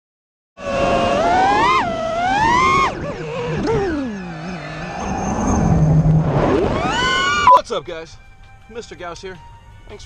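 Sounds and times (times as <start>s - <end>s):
drone motors whining: 0.6s - 7.6s.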